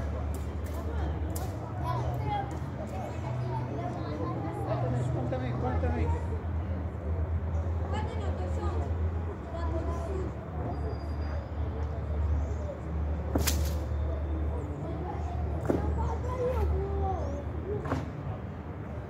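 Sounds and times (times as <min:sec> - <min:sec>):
distant voices of players: 0:00.0 - 0:19.0.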